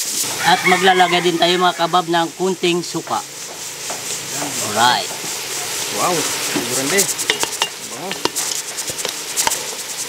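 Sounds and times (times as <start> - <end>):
meat sizzling in metal pot: 0.0 - 10.0.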